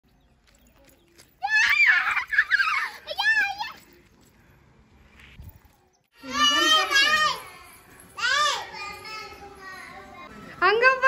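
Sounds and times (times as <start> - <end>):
child's high-pitched excited shout: 1.4 - 3.8.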